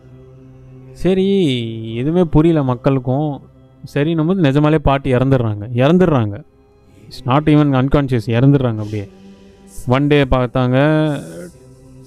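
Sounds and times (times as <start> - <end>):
man holding long vowel: 9.6 - 11.7.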